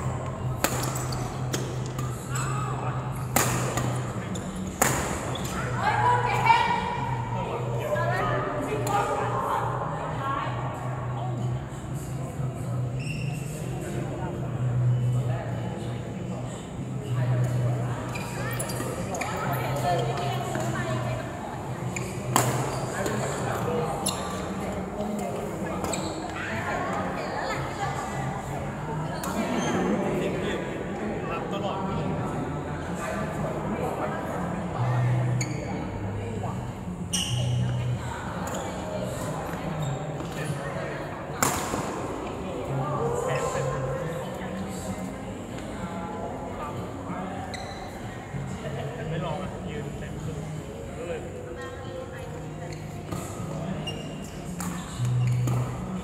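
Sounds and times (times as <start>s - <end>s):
racket striking shuttlecock: 3.3s - 4.0s.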